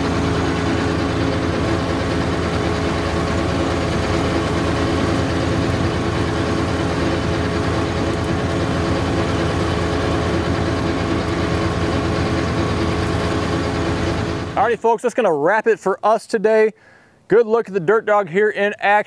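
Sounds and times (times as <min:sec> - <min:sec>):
tractor diesel engine running: 0:00.0 - 0:15.1.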